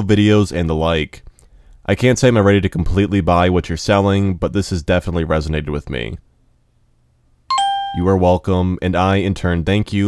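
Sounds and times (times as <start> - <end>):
doorbell ding-dong chime: 7.5 - 8.2.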